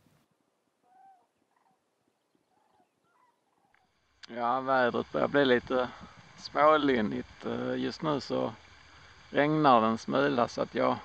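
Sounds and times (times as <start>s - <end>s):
distant bird calls: 0.8s - 4.2s.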